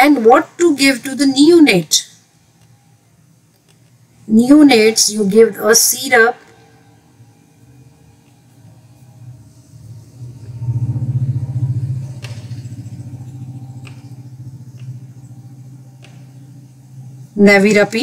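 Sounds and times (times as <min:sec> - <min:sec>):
low engine rumble: 0:06.6 - 0:18.0.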